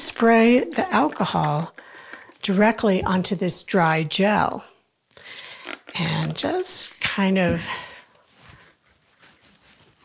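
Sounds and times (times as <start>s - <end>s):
soft handling rustles: 7.5s - 10.0s.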